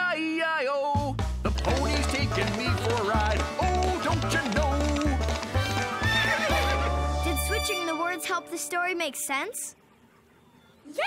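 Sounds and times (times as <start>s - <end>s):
background music with bass line: 1.0s - 7.6s.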